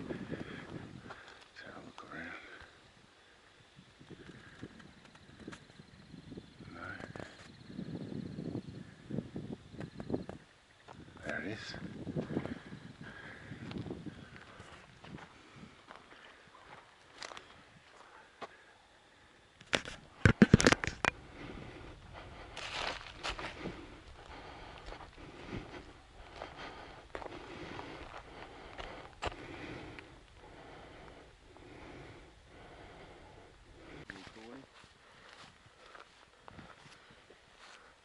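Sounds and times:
footsteps through grass: 0:22.2 - 0:29.4, 0:34.1 - 0:37.9.

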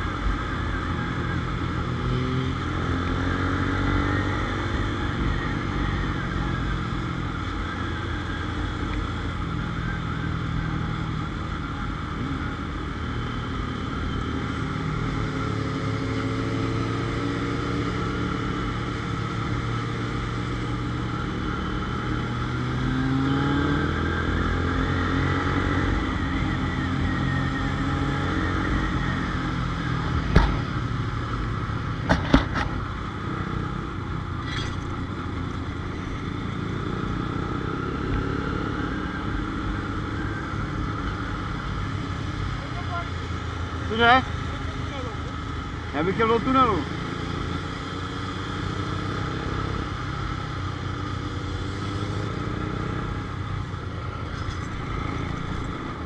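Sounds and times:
road and wind noise: 0:00.0 - 0:56.0.

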